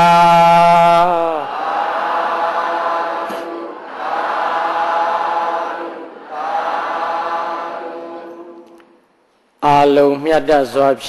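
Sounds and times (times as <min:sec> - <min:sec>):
group chanting in unison: 0:00.0 - 0:08.9.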